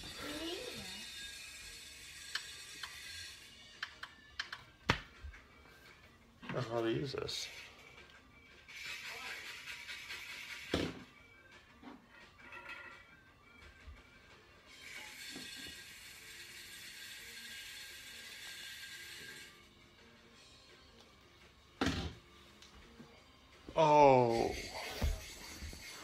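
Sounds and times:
faint television music and voices: 0.0 - 26.0.

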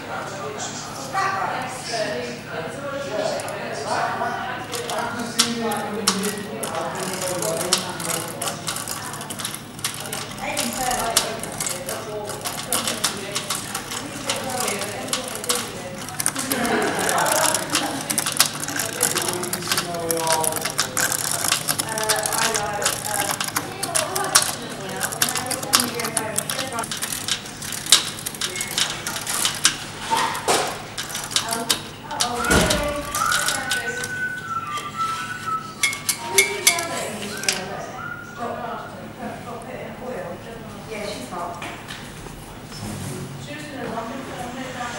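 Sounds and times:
voices talking in background: 0.0 - 44.9
wooden contraption clicking and rattling: 4.6 - 37.7.

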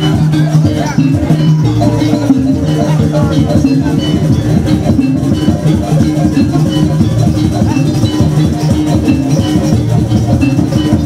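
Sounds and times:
drums and percussion: 0.0 - 11.0
gamelan ensemble melody: 0.0 - 11.0.

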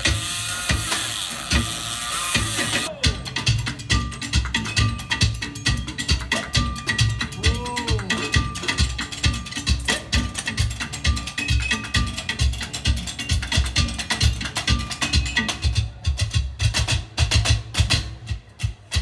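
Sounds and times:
buckets and bins struck rhythmically: 0.0 - 19.0.

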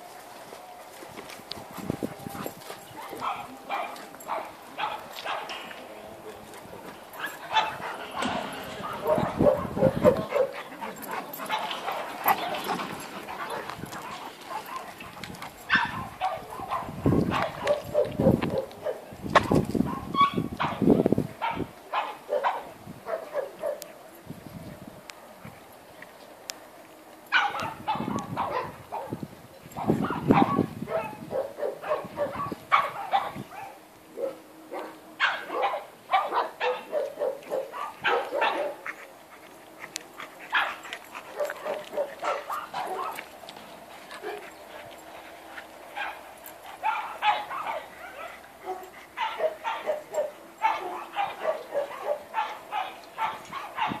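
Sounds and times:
dogs barking and yipping: 0.0 - 24.0, 27.2 - 54.0.

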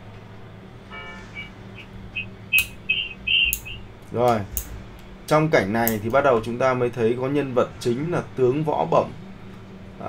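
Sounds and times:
short high-pitched pips: 1.0 - 3.8
sharp clicks: 2.2 - 4.7.

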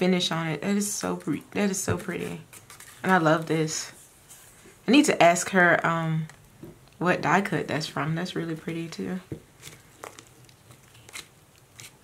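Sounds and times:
paper and ribbon rustling: 1.2 - 4.6
paper crinkles: 2.0 - 3.4, 9.6 - 12.0.

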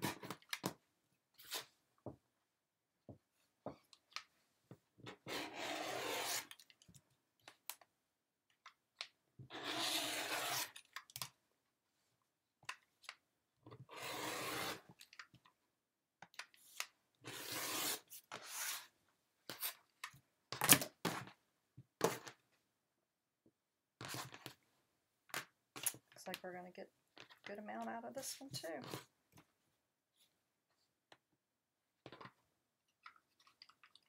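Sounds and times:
rotary cutter slicing fabric: 5.2 - 6.6, 9.5 - 10.8, 13.9 - 14.9.

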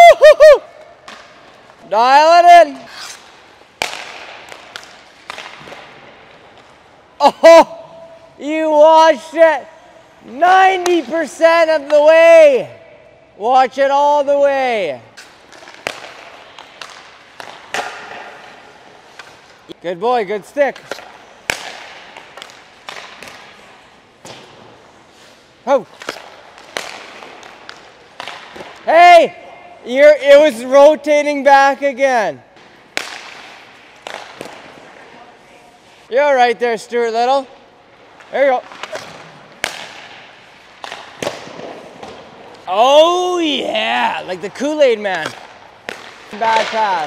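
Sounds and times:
hockey stick cracking on puck: 0.7 - 6.9, 15.1 - 19.8, 20.6 - 24.8, 25.8 - 28.9, 32.6 - 34.9, 38.0 - 43.1, 44.2 - 47.0
puck and stick knocking on ice: 1.0 - 6.8, 15.2 - 19.6, 20.6 - 23.6, 25.7 - 28.9, 32.6 - 34.9, 38.1 - 43.1, 43.7 - 47.0.

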